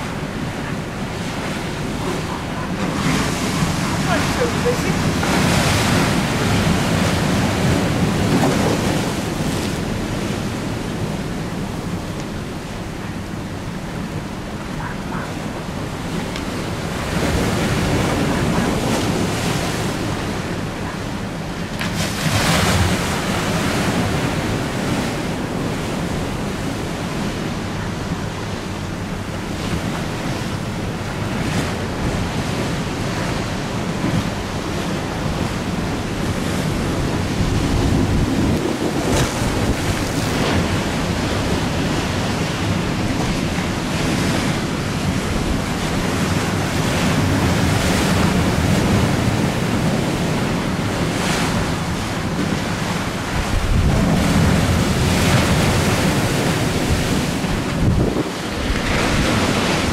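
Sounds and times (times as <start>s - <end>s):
choppy river water: 0.0s - 59.9s
wind buffeting microphone: 29.2s - 59.9s.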